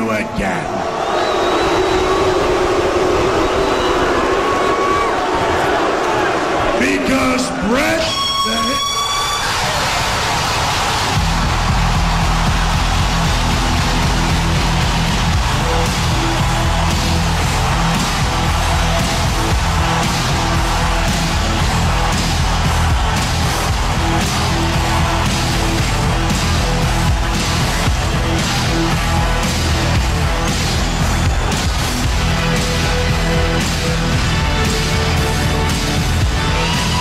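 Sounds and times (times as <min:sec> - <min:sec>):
crowd roaring: 0:00.0 - 0:37.0
man shouting into microphone: 0:06.8 - 0:09.0
heavy rock music: 0:09.5 - 0:37.0.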